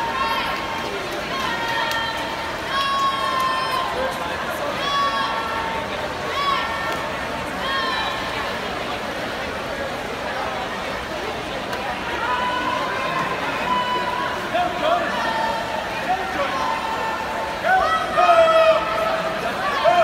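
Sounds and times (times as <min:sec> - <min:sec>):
spectators yelling and cheering: 0:00.0 - 0:09.0, 0:11.6 - 0:20.0
crowd noise: 0:00.0 - 0:20.0
long held shouts: 0:13.6 - 0:20.0.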